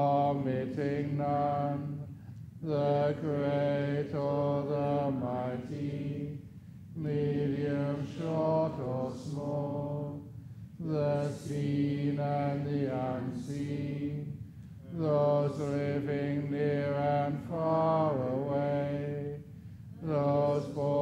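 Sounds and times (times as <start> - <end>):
man chanting verses: 0.0 - 6.4, 7.0 - 21.0.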